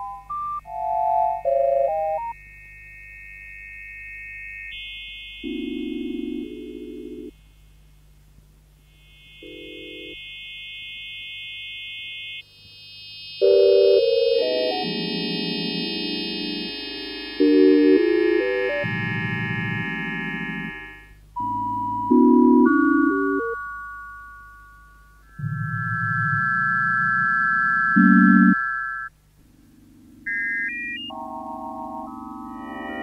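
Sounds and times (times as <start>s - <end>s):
sine tone electronic music: 0.0s - 7.9s, 8.8s - 33.0s
faint low hum: 5.4s - 10.9s.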